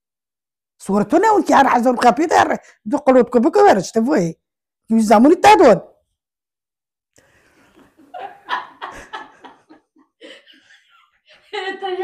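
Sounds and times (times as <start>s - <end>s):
woman laughing: 8.0s - 12.0s.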